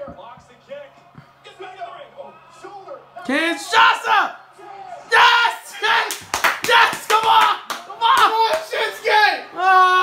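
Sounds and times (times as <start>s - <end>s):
loud excited voices: 0.8s - 10.0s
sharp hand claps: 6.0s - 8.8s.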